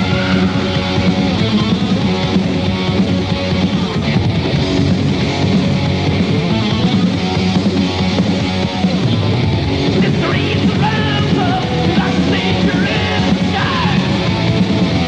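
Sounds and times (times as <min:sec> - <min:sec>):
heavy metal band playing: 0:00.0 - 0:15.0.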